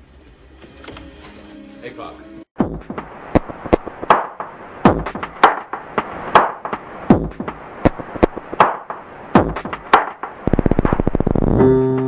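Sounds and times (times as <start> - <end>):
electronic music percussive hits: 2.6 - 10.4.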